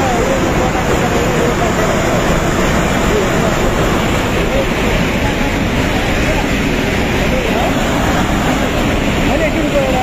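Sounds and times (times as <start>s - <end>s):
faint voices: 0.0s - 10.0s
torrent of water roaring: 0.0s - 10.0s.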